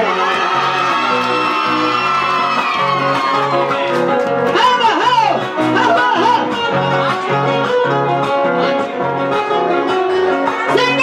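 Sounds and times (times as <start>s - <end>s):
strummed acoustic guitars: 2.5s - 10.8s.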